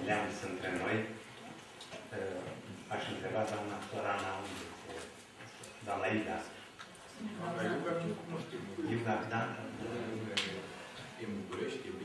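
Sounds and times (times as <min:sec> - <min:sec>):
man speaking: 0:07.5 - 0:12.0.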